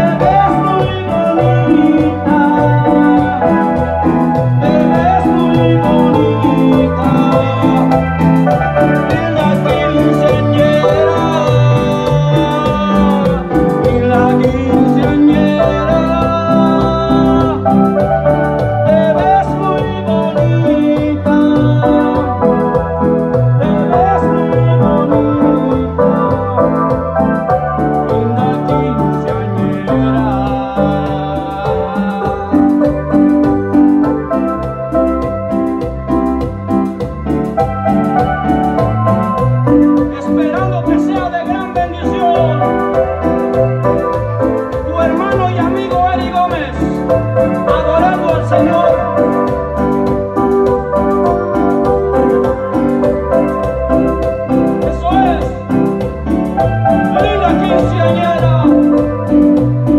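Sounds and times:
man singing: 0.0s - 34.6s, 39.2s - 50.8s, 51.6s - 59.9s
electronic keyboard playing: 0.0s - 59.9s
steady beat: 0.0s - 59.9s.

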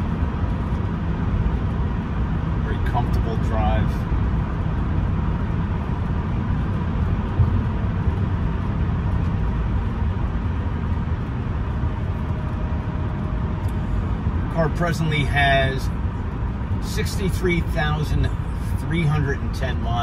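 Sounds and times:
car cabin engine and tyre noise: 0.0s - 20.0s.

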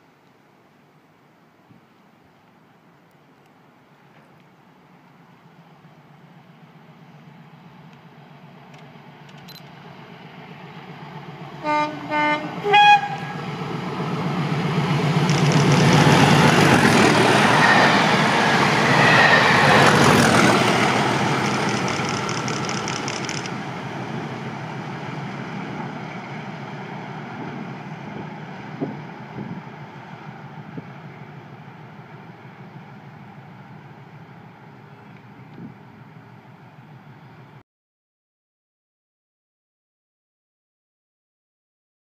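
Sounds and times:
diesel train passing: 2.6s - 37.6s.

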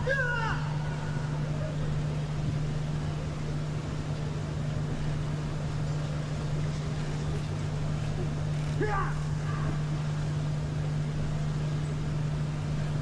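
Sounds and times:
constant low hum: 0.0s - 13.0s.

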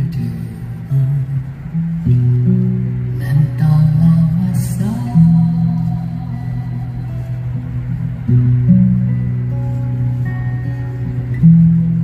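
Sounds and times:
man singing low held notes: 0.0s - 8.8s
acoustic guitar strumming: 0.0s - 12.0s.

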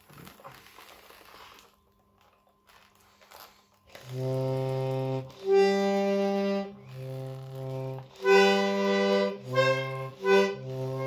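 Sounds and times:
accordion chords: 3.9s - 11.0s.

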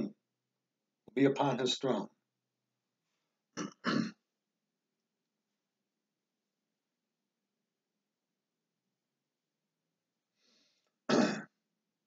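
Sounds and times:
person clearing throat: 3.6s - 4.2s, 11.1s - 11.6s
faint breath in: 10.4s - 11.0s.

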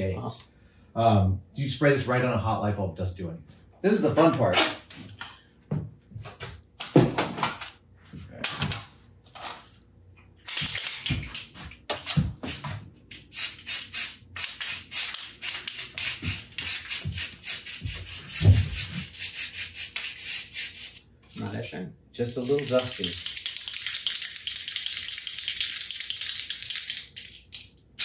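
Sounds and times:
aerosol spray hissing bursts: 12.0s - 12.7s, 13.3s - 21.0s.

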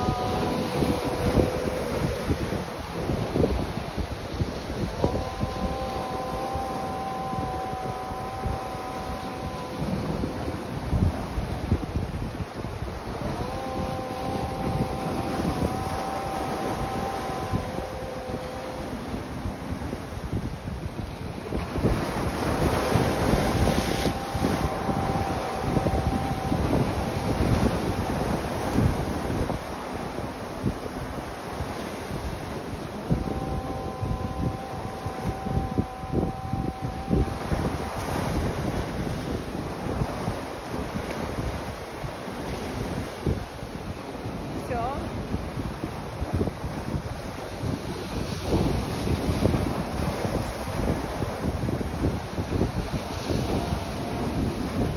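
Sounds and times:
waves breaking on rocky shore: 0.0s - 54.9s
wind buffeting microphone: 0.0s - 54.9s.

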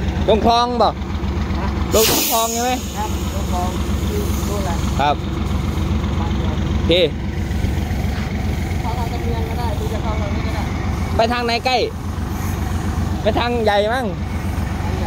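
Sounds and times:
diesel engine idling: 0.0s - 15.0s.

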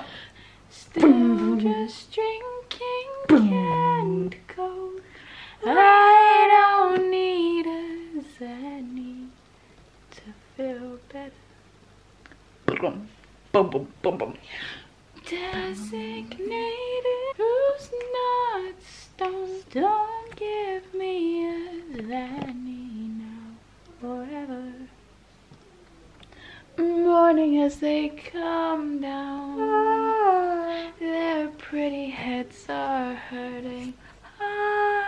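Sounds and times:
woman humming a wordless melody: 0.7s - 5.0s, 15.2s - 24.9s, 26.7s - 35.0s.

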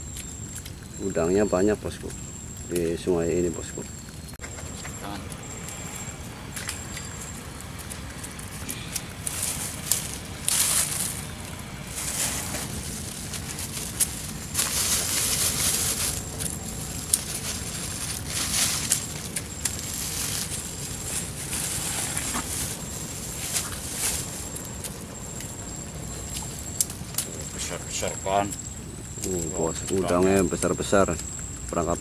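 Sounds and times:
low steady rumble: 0.0s - 32.0s
nylon mesh trap rustling and scraping: 8.5s - 24.9s.

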